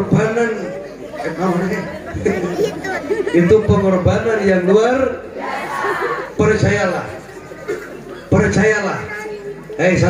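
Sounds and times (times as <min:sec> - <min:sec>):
overlapping chatter in a hall: 0:00.0 - 0:10.0.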